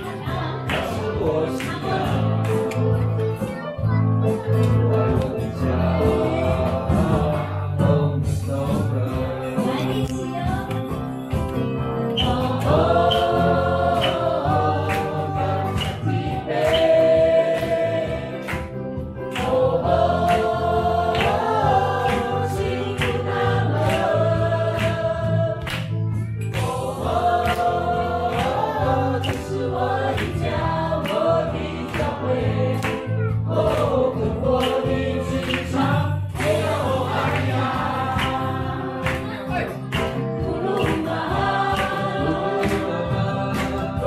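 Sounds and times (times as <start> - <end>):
group singing: 0.0 - 3.3, 4.5 - 44.0
drum kit: 0.0 - 44.0
electric bass: 0.0 - 44.0
keyboard: 0.0 - 44.0
woman singing lead: 8.8 - 11.3.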